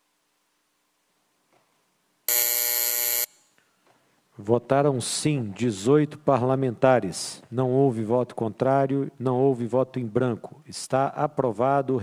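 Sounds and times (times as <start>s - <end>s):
electric buzzer: 2.3s - 3.5s.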